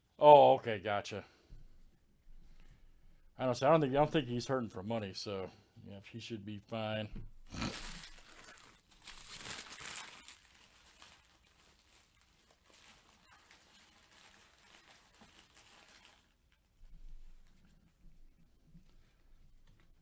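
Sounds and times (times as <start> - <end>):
foil wrappers crinkling: 7.6 - 16.7.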